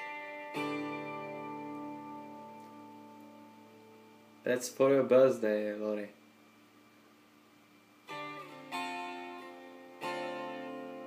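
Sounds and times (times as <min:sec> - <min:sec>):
electric guitar chord ringing: 0:00.0 - 0:05.2, 0:08.0 - 0:11.0.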